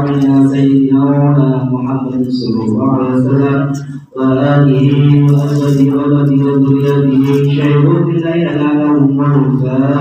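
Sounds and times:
man chanting a prayer: 0.0s - 10.0s.

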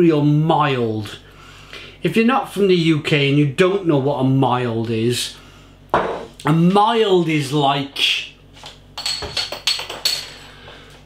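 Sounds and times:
bottle cap rattling on counter: 9.0s - 10.5s.

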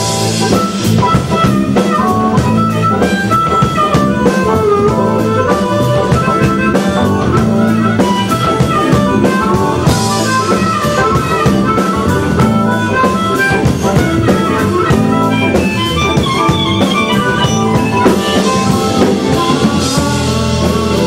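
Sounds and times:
bass: 0.0s - 21.0s
drum kit steady beat: 0.0s - 21.0s
electric guitar: 0.0s - 21.0s
harmonica solo: 0.0s - 21.0s.

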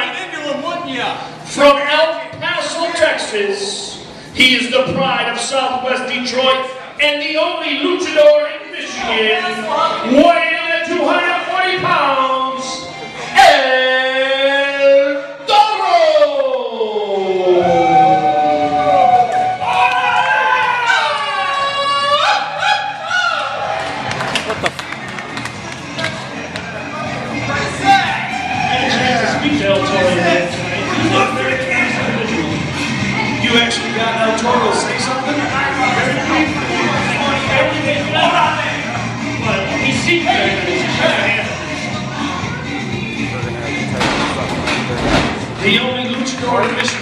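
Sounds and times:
crowd voices: 0.0s - 15.5s, 16.2s - 47.0s
person shouting: 17.1s - 19.3s
sharp claps: 24.0s - 26.7s.

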